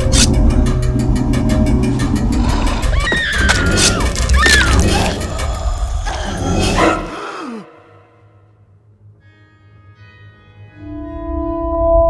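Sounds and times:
low rumbling drone: 0.0 - 7.2.

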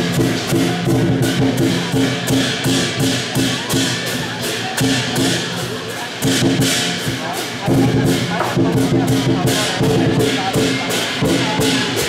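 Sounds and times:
clashing cymbals: 0.0 - 12.0
large drum beating: 0.0 - 12.0.

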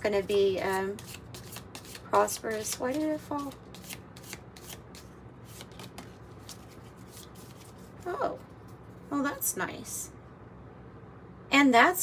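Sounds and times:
cards being shuffled: 1.0 - 8.8.

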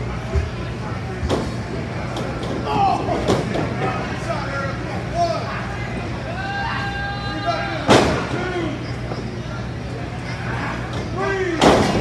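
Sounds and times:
crowd shouting: 6.2 - 8.8.

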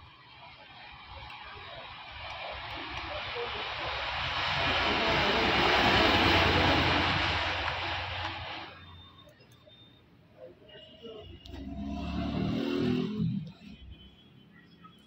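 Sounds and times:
passing vehicle engine: 2.9 - 8.9, 11.4 - 14.0.

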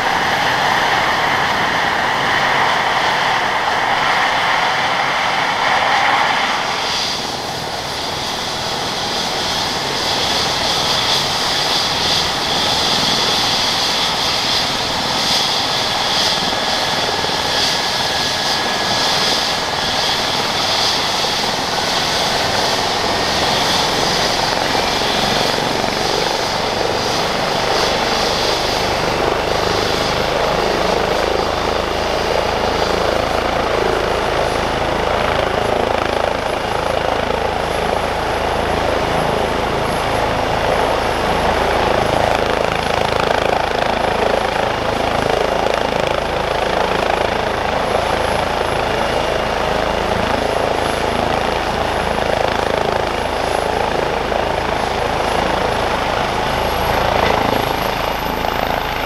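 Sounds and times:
helicopter engines and rotor running: 0.0 - 59.0
high turbine whine: 0.0 - 59.0.

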